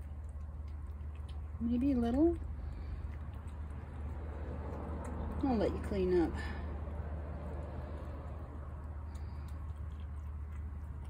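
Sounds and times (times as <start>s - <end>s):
cat chewing and licking food: 0.0s - 11.0s
steady low hum: 0.0s - 11.0s.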